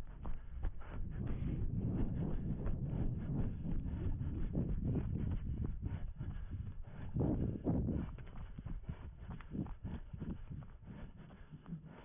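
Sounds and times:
runner breathing: 0:00.0 - 0:12.0.

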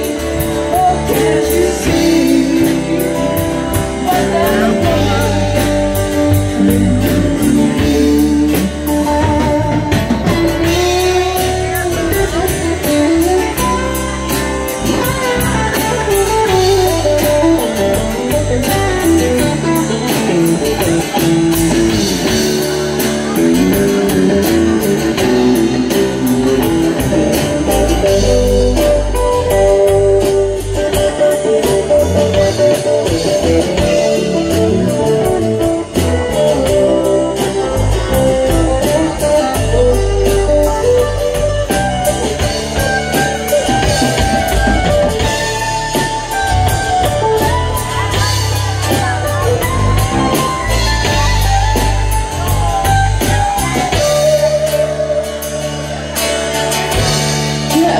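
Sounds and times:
bass and drums beat: 0:00.0 - 0:57.9
electric guitar lines: 0:00.0 - 0:57.9.

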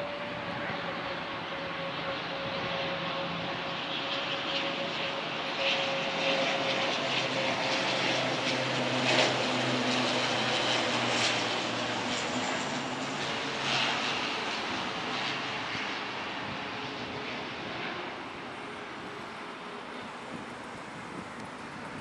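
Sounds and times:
turboprop plane flying past: 0:00.0 - 0:22.0.

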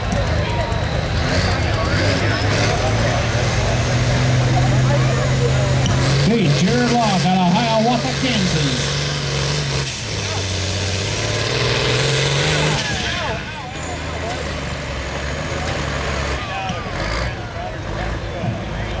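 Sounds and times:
tractor diesel engine running: 0:00.0 - 0:19.0.

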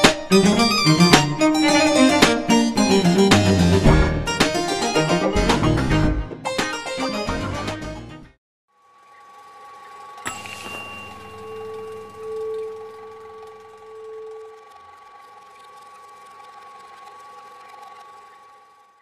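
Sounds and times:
film projector whirring and rattling: 0:08.7 - 0:19.0
low hum: 0:09.0 - 0:19.0
held synthetic tones: 0:09.2 - 0:19.0.

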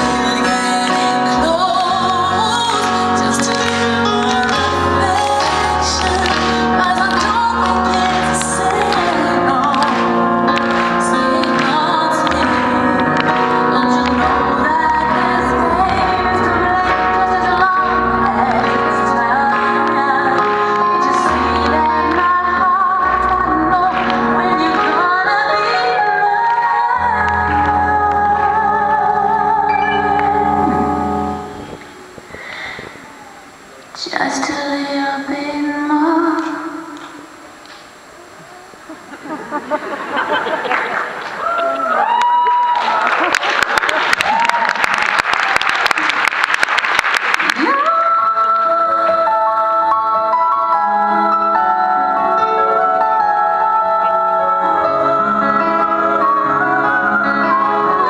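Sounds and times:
woman singing pop ballad: 0:00.0 - 0:31.5, 0:34.0 - 0:37.3, 0:47.5 - 0:58.0
keyboard chords and bass: 0:00.0 - 0:33.9, 0:47.7 - 0:58.0.

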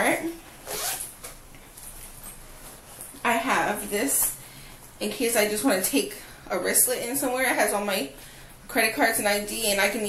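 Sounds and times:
zipper being pulled open: 0:00.6 - 0:01.2.

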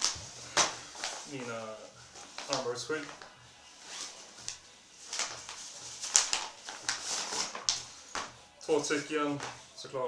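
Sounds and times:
padded fabric rustling: 0:00.0 - 0:09.8.

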